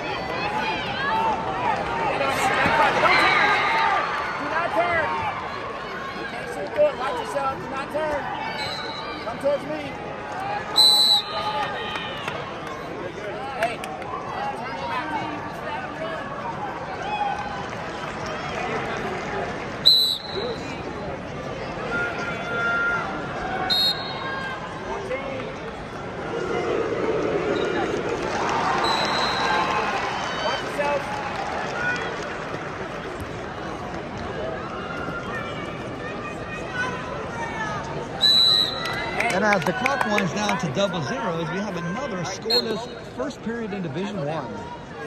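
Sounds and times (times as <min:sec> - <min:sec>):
crowd chatter: 0:00.0 - 0:45.0
referee whistle blasts: 0:08.6 - 0:09.2, 0:10.8 - 0:11.5, 0:19.8 - 0:20.7, 0:23.7 - 0:24.3, 0:28.8 - 0:29.6, 0:38.2 - 0:39.0, 0:42.2 - 0:43.0.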